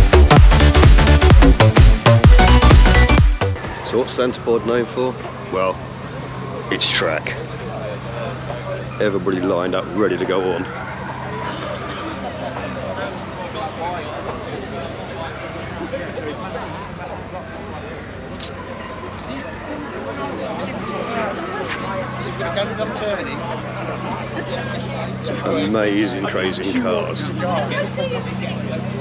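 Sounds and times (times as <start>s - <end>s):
car engines idling: 0.0s - 29.0s
crowd chatter: 0.0s - 29.0s.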